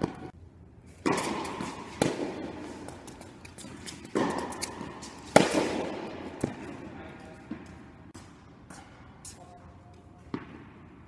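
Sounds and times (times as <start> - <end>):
tennis ball bouncing: 0.0 - 0.3, 1.0 - 8.8, 10.2 - 11.0
tennis ball hits: 1.0 - 6.8.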